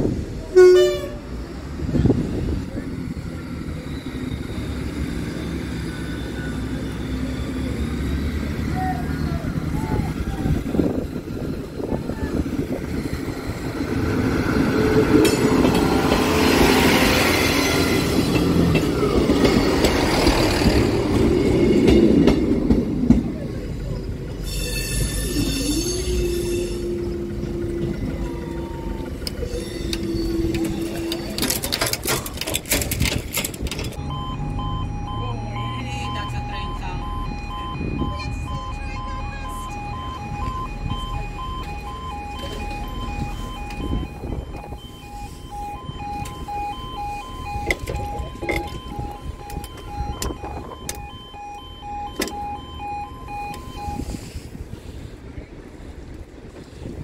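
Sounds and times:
level crossing alarm beeps: 33.8s - 54.4s.

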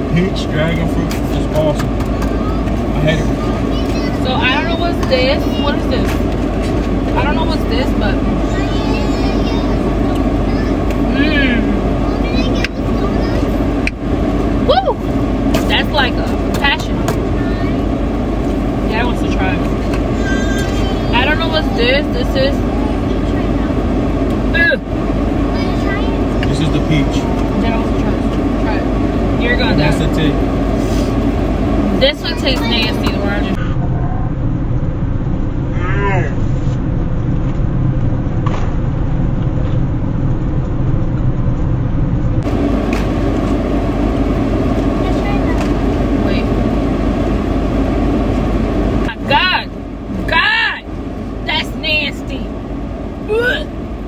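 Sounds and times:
people talking: 0.0s - 6.3s, 7.1s - 13.7s, 14.6s - 17.8s, 18.8s - 23.8s, 24.6s - 24.9s, 25.5s - 31.1s, 31.9s - 34.3s, 35.8s - 36.4s, 45.0s - 46.6s, 49.0s - 52.5s, 53.3s - 53.7s
car engine rumble: 0.0s - 54.0s.

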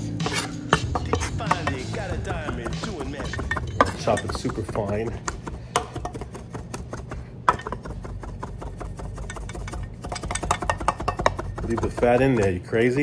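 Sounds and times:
cleaver chopping on wooden block: 0.2s - 12.6s.

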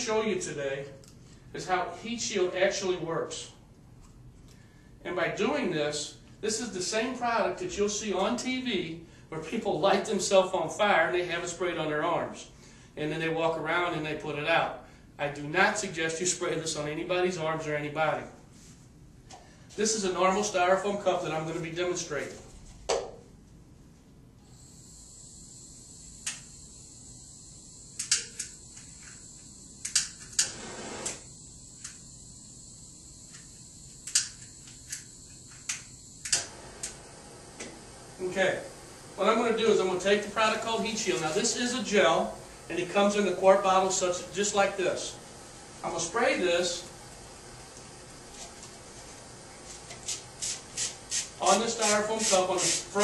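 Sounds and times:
propane torch gas hiss: 24.4s - 53.0s
torch igniter clicks: 26.2s - 26.5s, 28.0s - 29.2s, 29.8s - 32.0s, 33.3s - 37.8s
spray bottle hissing: 46.8s - 53.0s.

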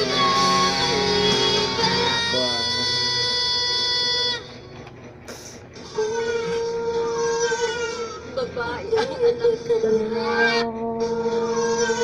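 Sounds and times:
music through computer speakers: 0.0s - 2.3s.

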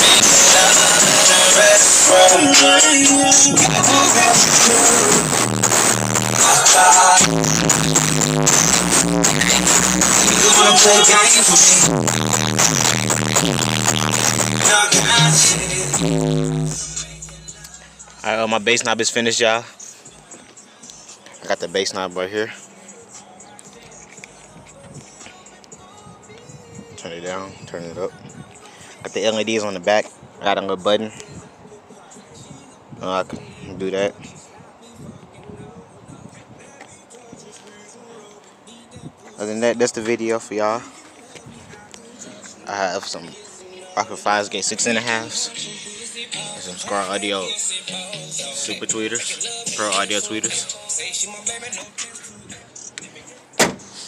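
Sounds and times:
music from car stereo: 0.0s - 54.0s
sharp thump: 53.6s - 53.9s.

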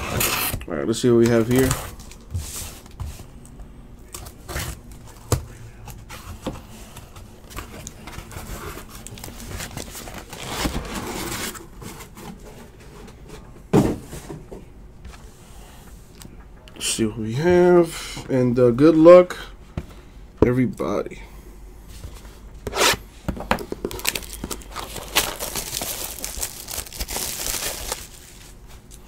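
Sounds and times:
plastic wrapper crinkling: 23.8s - 29.0s
wrapper tearing: 23.9s - 28.6s.

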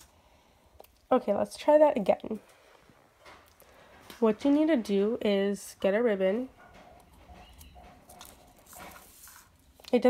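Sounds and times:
plastic ribbon rustling: 7.1s - 10.0s.

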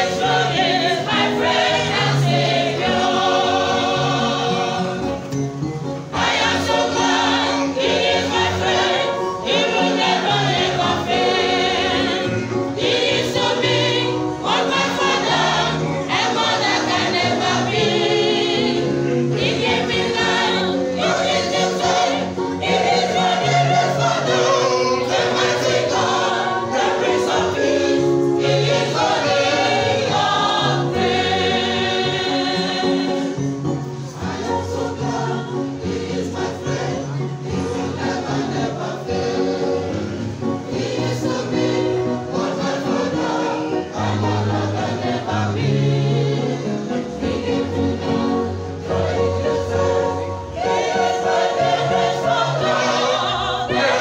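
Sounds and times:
church choir singing gospel: 0.0s - 54.0s.

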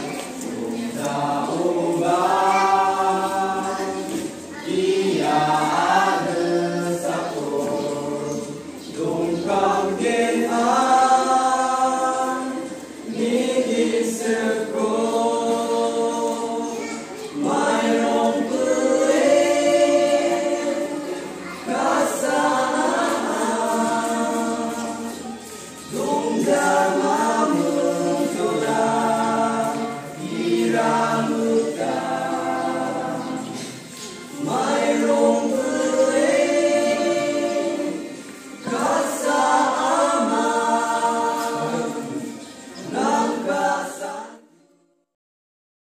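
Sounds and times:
group singing unaccompanied: 0.0s - 45.2s.

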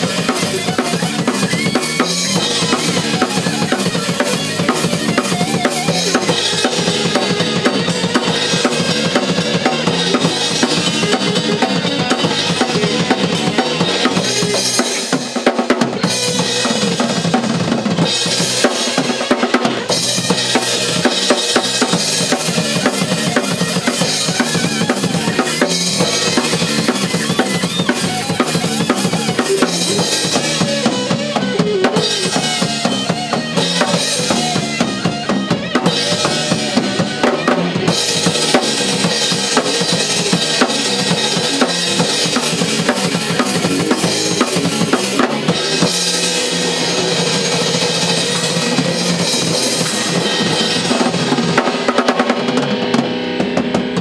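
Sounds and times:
heavy metal band playing: 0.0s - 54.0s.

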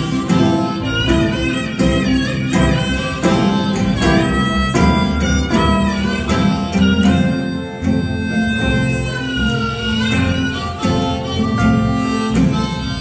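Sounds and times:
bass: 0.0s - 13.0s
blues harmonica: 0.0s - 13.0s
plucked ukulele chords: 0.0s - 13.0s.

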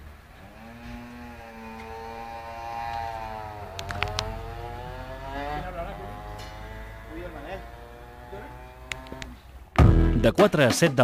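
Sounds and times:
vehicle engine passing by: 0.0s - 9.7s
sharp clicks: 3.7s - 4.4s, 8.9s - 9.4s.

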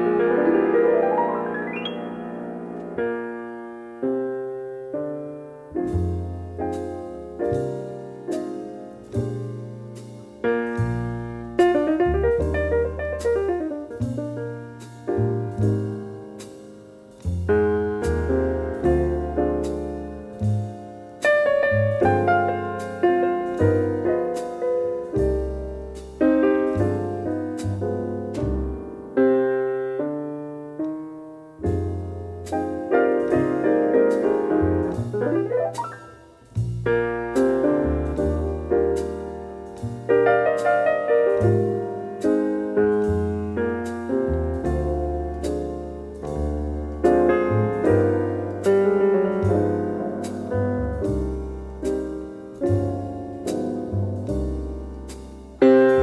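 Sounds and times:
jazz piano chords: 0.0s - 56.0s.

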